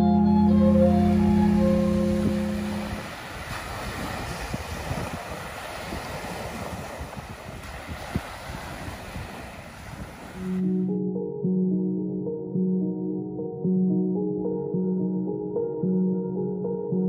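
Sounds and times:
organ music: 0.0s - 3.1s
wind rumbling on microphone: 0.0s - 10.8s
small waves washing on sand: 2.2s - 10.7s.

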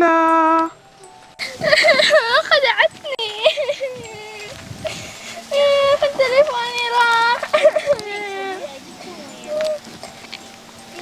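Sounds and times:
faint background music: 0.0s - 11.0s
girl whimpering cry: 1.4s - 9.9s.

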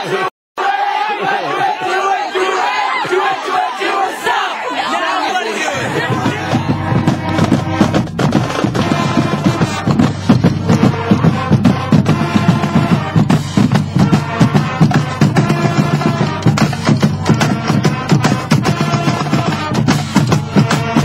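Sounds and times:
marching band playing: 0.6s - 21.0s
steady drum beat: 5.8s - 21.0s.

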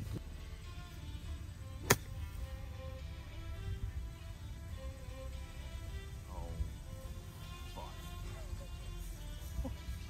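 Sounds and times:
golf club striking ball: 1.8s - 2.5s.

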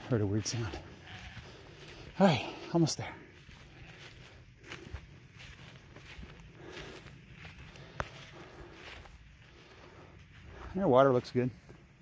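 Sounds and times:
footsteps through dry grass: 0.0s - 12.0s.

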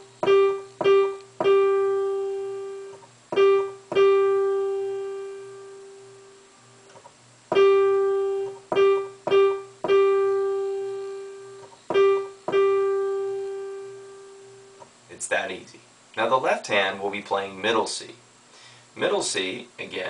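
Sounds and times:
digital piano notes: 0.0s - 6.4s, 7.5s - 14.9s.

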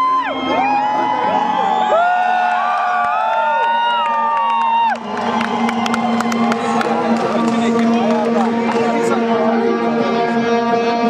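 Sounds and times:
crowd cheering and whooping: 0.0s - 9.0s.

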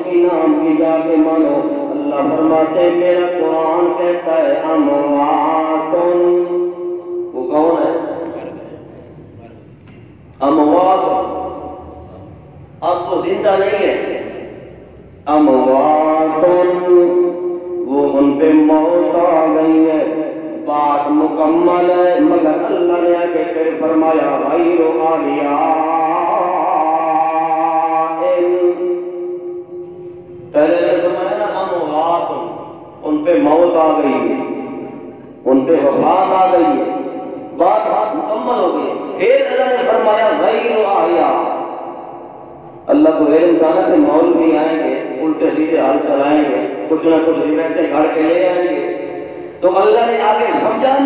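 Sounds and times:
man chanting: 0.0s - 9.8s, 10.4s - 51.0s.

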